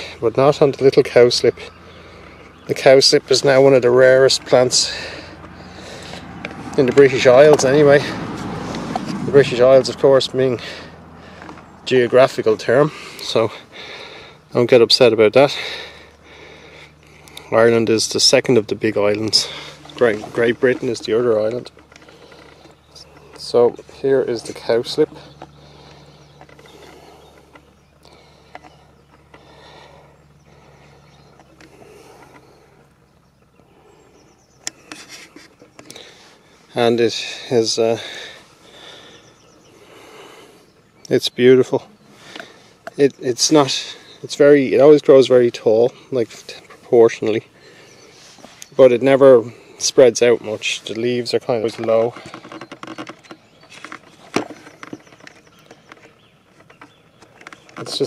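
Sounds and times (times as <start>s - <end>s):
low steady hum: 0.0s - 37.4s
small clicks and rustles: 18.2s - 33.7s, 34.6s - 36.9s, 50.4s - 58.0s.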